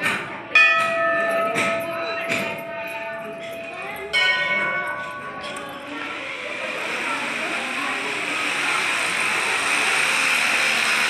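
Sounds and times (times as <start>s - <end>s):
metal bell ringing: 0.6s - 6.1s.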